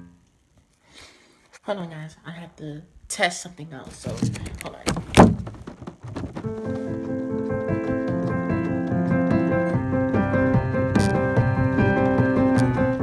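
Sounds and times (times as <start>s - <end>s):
phone handling thump: 4.1s - 6.5s
piano keyboard chords and melody: 6.4s - 13.0s.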